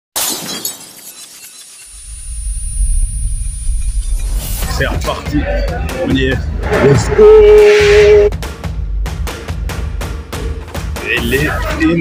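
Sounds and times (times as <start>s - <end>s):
glass breaking crash: 0.2s - 2.0s
deep low rumble: 2.0s - 4.8s.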